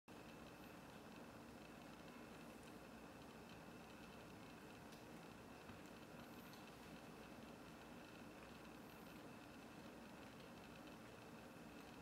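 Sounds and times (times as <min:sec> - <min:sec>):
low hiss: 0:00.1 - 0:12.0.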